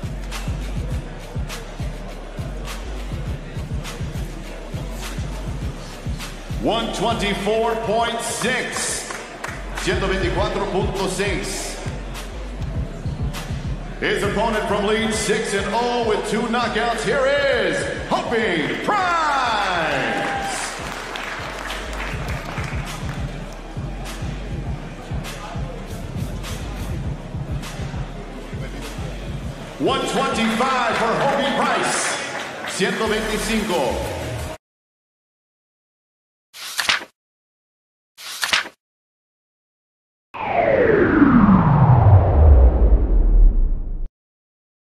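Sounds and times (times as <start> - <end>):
background music: 0.0 - 34.6
crowd applauding: 8.4 - 10.0, 18.6 - 23.9, 30.0 - 33.6
announcer calling out: 14.0 - 20.7, 29.8 - 32.1
tone sliding down in pitch: 40.4 - 44.0.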